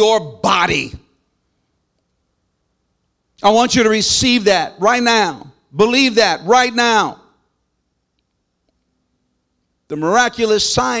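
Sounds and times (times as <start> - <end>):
man's amplified voice: 0.0 - 1.2, 3.4 - 7.4, 9.9 - 11.0.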